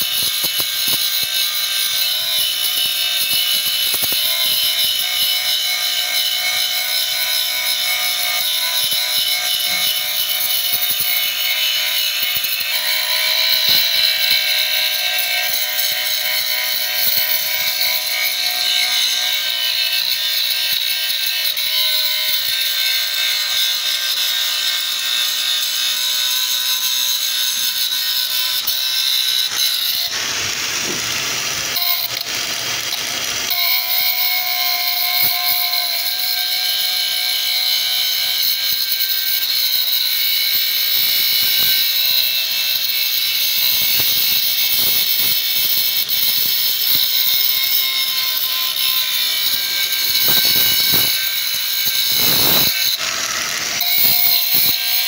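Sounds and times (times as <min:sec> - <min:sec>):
angle grinder grinding metal: 0:00.0 - 0:55.0.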